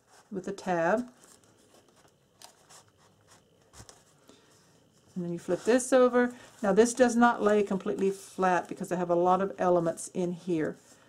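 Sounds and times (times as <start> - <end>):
paper rustling: 0.9 - 8.9.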